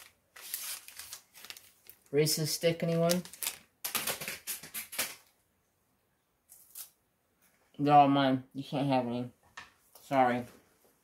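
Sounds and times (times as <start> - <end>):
plastic wrapper crinkling: 0.0 - 5.3.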